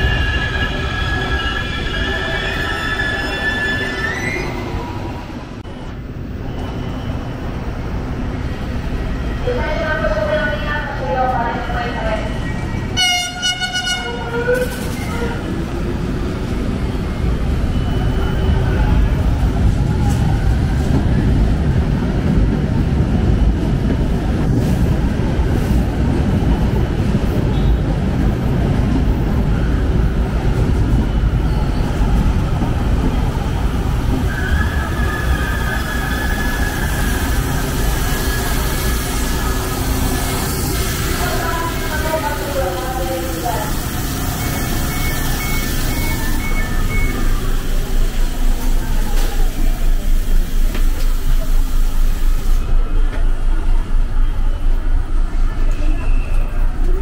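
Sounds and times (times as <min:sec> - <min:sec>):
train wheels rumbling on rail: 0:00.0 - 0:57.0
train horn blast: 0:13.0 - 0:15.4.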